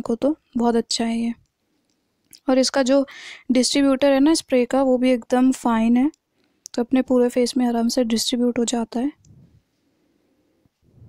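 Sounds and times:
person speaking: 2.4 - 6.1.

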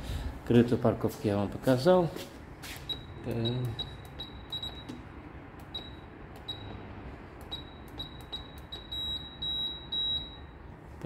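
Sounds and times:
high-pitched electronic beeps: 2.8 - 5.0, 7.4 - 10.5.

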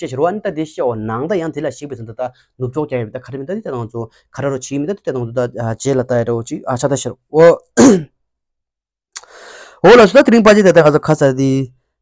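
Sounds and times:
man clearing his throat: 7.8 - 8.2.

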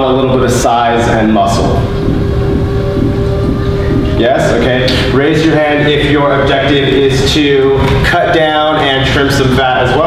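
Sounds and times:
faint steady hum: 0.0 - 10.0
low room rumble: 0.0 - 10.0.

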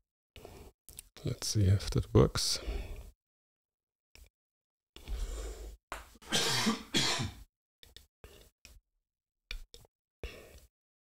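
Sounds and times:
man clearing his throat: 6.3 - 7.4
man coughing: 6.3 - 7.4.

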